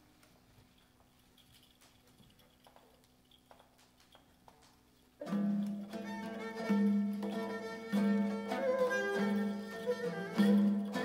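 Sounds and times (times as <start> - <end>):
bowed fiddle long low notes: 5.9 - 11.0.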